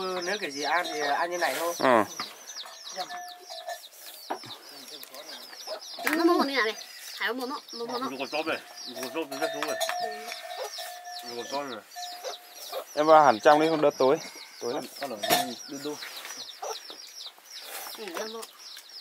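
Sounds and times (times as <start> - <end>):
hen clucking: 0.0 - 18.5
chicks peeping: 0.0 - 19.0.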